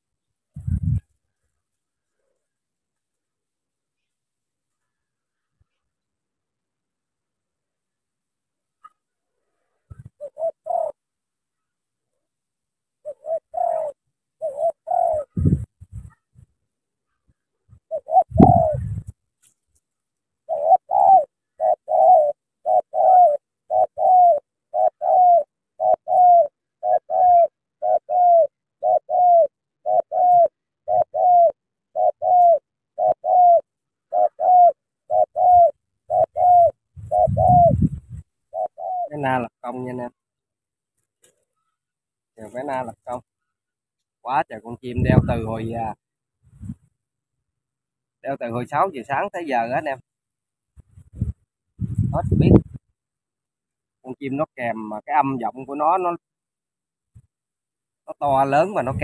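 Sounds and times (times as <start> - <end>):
dull low thumps: 0.6 - 1.0, 51.0 - 52.8
dove cooing: 9.8 - 11.1, 13.0 - 16.3, 17.3 - 19.2, 20.4 - 40.2, 42.4 - 43.3, 58.1 - 59.0.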